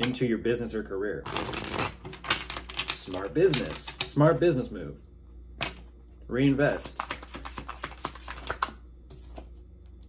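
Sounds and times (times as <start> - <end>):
cards being shuffled: 6.7 - 10.0.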